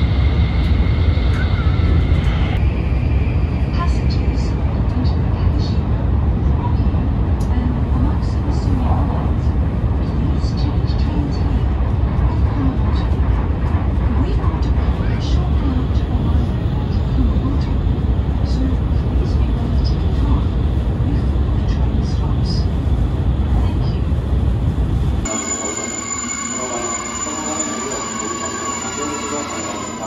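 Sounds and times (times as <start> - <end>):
train rumble inside carriage: 0.0 - 30.0
steady held tone: 25.3 - 30.0.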